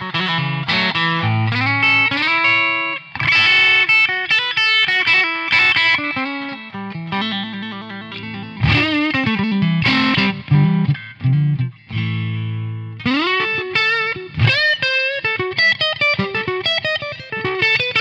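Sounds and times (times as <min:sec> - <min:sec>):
electric guitar single-note lines: 0:00.0 - 0:18.0
strummed guitar chords: 0:00.0 - 0:18.0.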